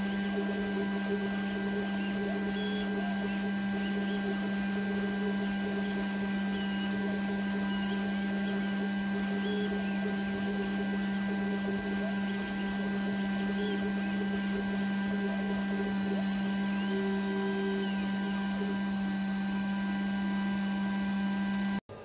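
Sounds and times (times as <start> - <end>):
laser head high whines: 0.0 - 20.7
laser cutter humming: 0.0 - 22.0.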